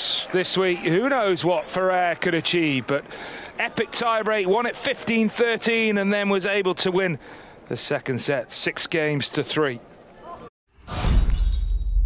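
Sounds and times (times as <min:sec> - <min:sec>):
glass shattering: 0:10.9 - 0:12.0.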